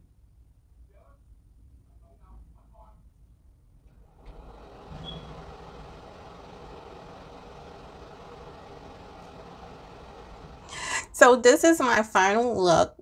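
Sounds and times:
low mechanical drone: 3.9 - 11.2.

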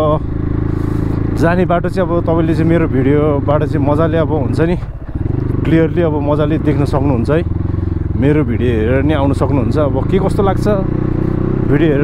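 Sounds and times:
dirt bike engine running: 0.0 - 12.0
man talking: 1.4 - 5.0, 5.6 - 7.5, 8.1 - 10.9, 11.6 - 12.0.

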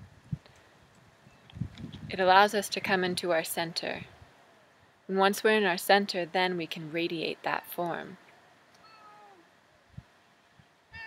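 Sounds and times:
cat meowing: 8.8 - 9.4.

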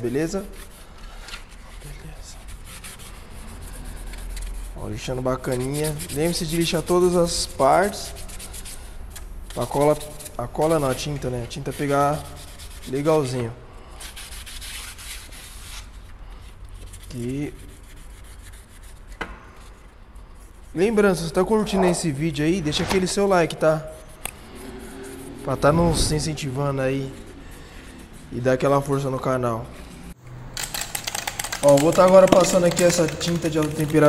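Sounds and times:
sandpaper scratching plastic: 0.0 - 21.5, 26.4 - 29.1, 30.6 - 34.0.

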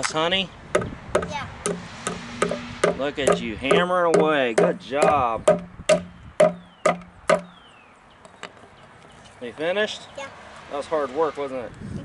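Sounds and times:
hammer knocking on wood: 0.8 - 7.5.

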